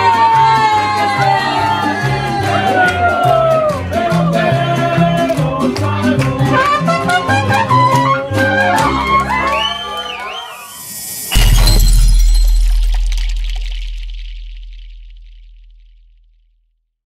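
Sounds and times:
mariachi band music: 0.0 - 10.8
glassy shatter: 10.7 - 16.0
deep boom: 10.9 - 16.6.

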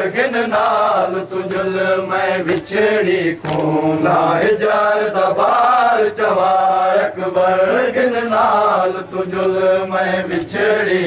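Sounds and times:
men chanting a lament: 0.0 - 11.0
chest-beating slaps: 2.4 - 2.8, 3.4 - 3.8.

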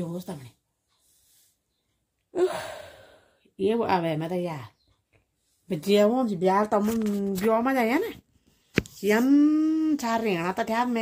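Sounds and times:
woman speaking: 0.0 - 0.6, 3.6 - 4.8, 5.7 - 8.2, 8.8 - 11.0
woman sighing: 2.3 - 3.4.

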